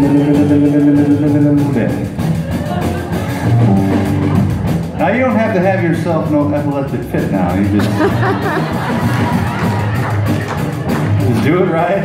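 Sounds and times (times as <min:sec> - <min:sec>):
rock and roll band playing: 0:00.0 - 0:12.0.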